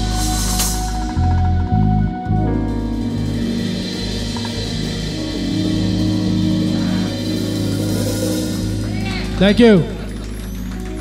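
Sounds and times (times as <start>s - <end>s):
live jazz band playing: 0.0s - 11.0s.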